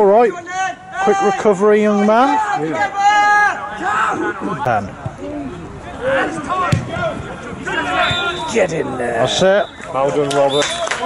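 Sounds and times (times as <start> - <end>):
people shouting: 0.4 - 4.6, 6.0 - 8.7
football kick thud: 6.7 - 7.1.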